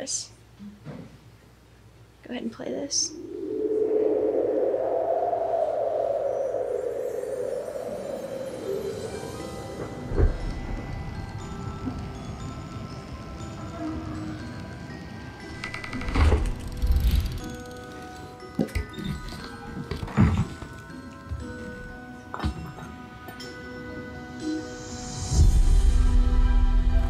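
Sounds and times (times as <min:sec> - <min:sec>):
sustained high notes: 0:03.0 - 0:16.0
film soundtrack music: 0:05.0 - 0:27.0.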